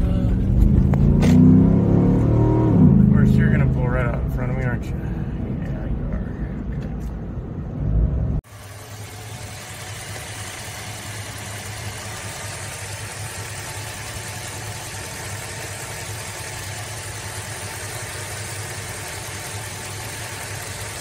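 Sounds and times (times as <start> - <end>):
car engine idling: 2.2 - 7.8, 8.4 - 21.0.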